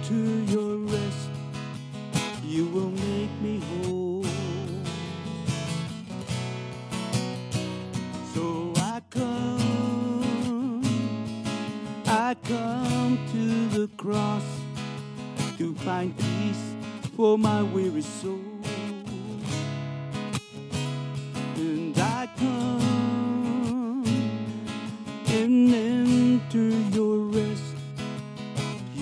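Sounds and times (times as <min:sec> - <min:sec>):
strummed acoustic guitar: 0:00.0 - 0:29.0.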